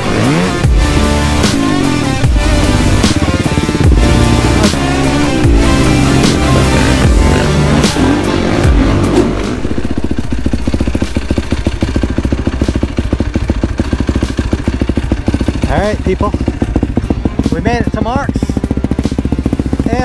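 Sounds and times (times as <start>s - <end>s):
music: 0.0s - 20.0s
quad engine idling: 0.0s - 20.0s.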